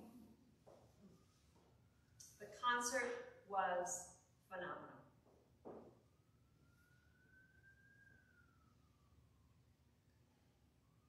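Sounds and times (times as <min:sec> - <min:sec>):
emergency vehicle siren wailing: 0:00.8 - 0:03.4, 0:05.8 - 0:11.0.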